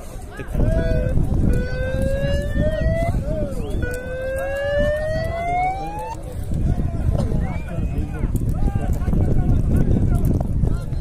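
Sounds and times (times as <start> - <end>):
crowd murmuring and calling out: 0.0 - 11.0.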